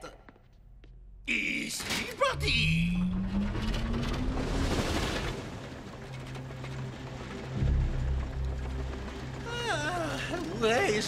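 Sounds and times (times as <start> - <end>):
cart rising whine: 2.5 - 9.4
cart rumbling on rails: 2.8 - 11.0.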